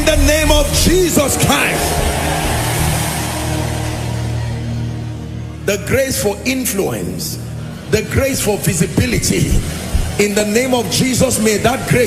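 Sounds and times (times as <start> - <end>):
congregation praying aloud: 0.0 - 4.4
low keyboard chord: 0.0 - 7.6.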